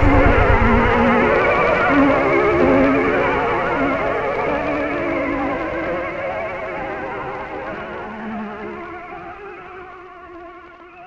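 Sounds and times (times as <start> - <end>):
brief low synth note: 0.0 - 1.5
wavering synthesizer chord: 0.0 - 1.5.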